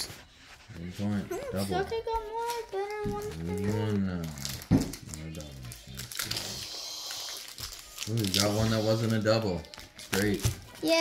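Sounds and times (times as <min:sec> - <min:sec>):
child's voice: 0:01.4 - 0:03.9, 0:10.8 - 0:11.0
plastic wrapper crinkling: 0:02.4 - 0:10.8.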